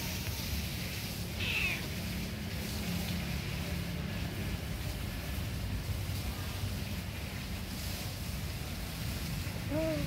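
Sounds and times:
cat meowing: 1.4s - 1.9s.

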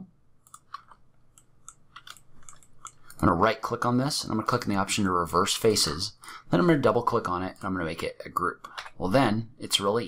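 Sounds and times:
mouse and keyboard clicking: 0.4s - 3.2s.

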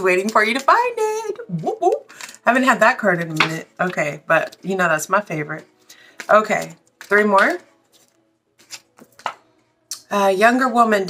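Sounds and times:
cards clicking and tapping: 6.0s - 9.4s.

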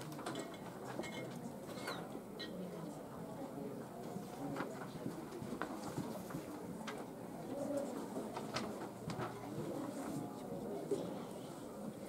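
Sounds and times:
quiet conversation and whispering: 0.0s - 12.0s.

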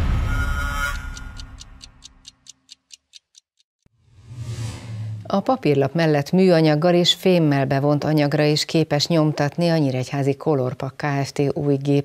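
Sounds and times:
theme music: 0.0s - 2.1s
clock-like ticking: 0.8s - 3.7s.

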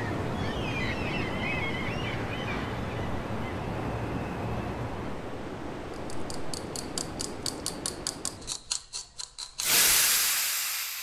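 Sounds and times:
clockwork gears ratcheting: 6.7s - 11.0s
loud hiss: 9.6s - 11.0s.

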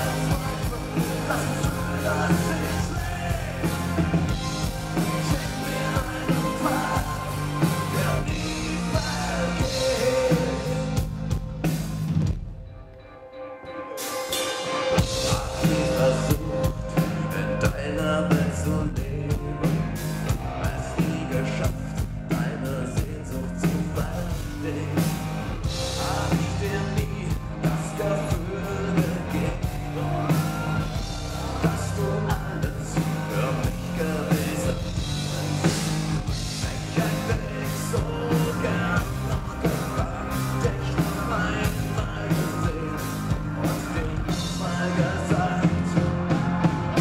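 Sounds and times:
person singing: 0.0s - 11.2s, 13.0s - 47.0s
live rock band playing: 0.0s - 47.0s.

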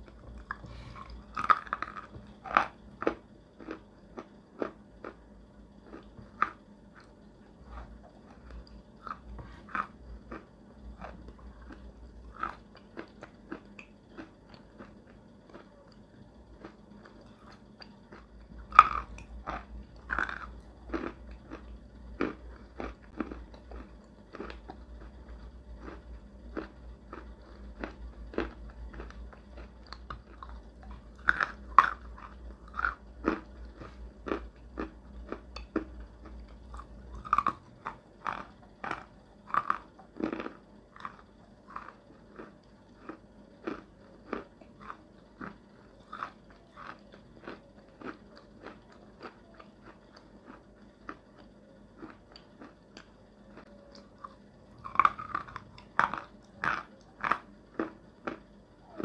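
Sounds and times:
person chewing chalk: 0.0s - 5.2s, 5.8s - 59.0s.

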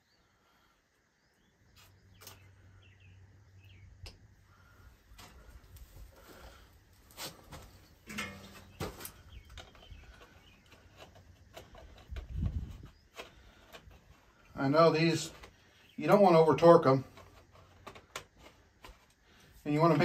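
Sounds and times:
birds chirping: 0.0s - 5.6s, 7.6s - 17.1s
grease gun clicks and scrapes: 8.0s - 19.4s.

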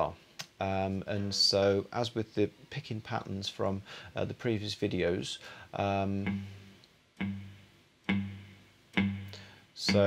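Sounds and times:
cigar box guitar strings plucked: 6.2s - 6.6s, 7.2s - 10.0s.

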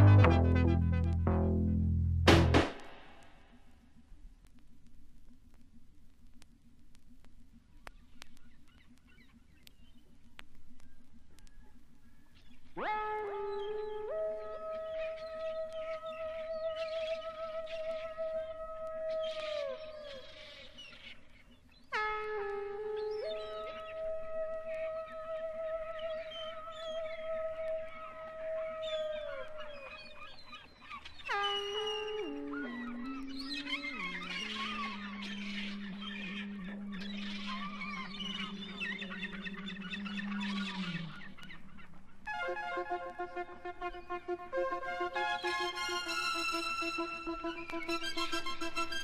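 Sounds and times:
synth chord: 0.0s - 3.1s
synth note with vibrato: 0.0s - 3.2s
bird calls chattering: 25.9s - 42.3s.

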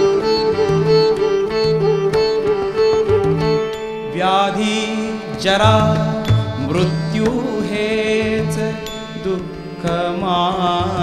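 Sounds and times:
harmonium drone: 0.0s - 11.0s
sitar: 0.0s - 11.0s
tabla: 0.0s - 11.0s
person singing ornamented phrases: 4.0s - 11.0s.

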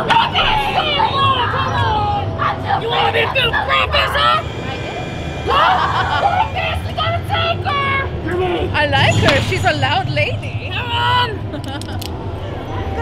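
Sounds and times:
indistinct voices talking: 0.0s - 13.0s
low background hum: 0.0s - 13.0s.

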